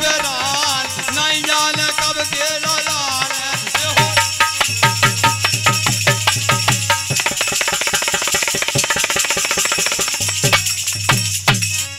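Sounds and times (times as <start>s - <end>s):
harmonium notes: 0.0s - 11.9s
small hand cymbals: 0.0s - 11.9s
wooden clappers jingling: 0.0s - 11.9s.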